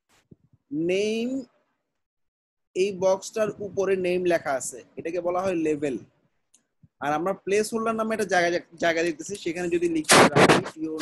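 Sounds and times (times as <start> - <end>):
man speaking: 0.7 - 1.5, 2.8 - 6.1, 7.0 - 11.0.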